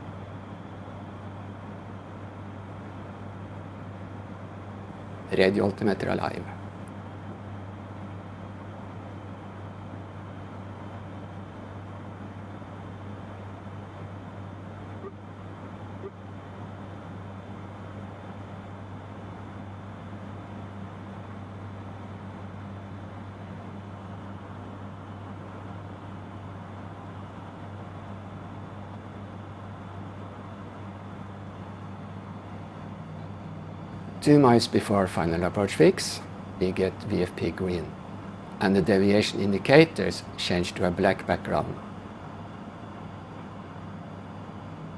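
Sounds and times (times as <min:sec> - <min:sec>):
turboprop engine drone: 0:00.0 - 0:44.9.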